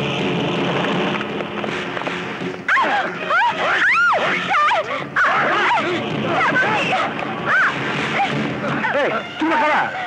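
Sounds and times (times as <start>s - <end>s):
woman shrieking and crying: 2.7s - 8.4s.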